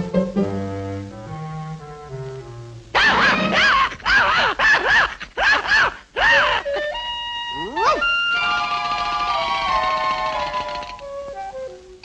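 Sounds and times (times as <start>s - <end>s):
cartoon puppy barking: 3.0s - 6.6s, 7.6s - 8.7s.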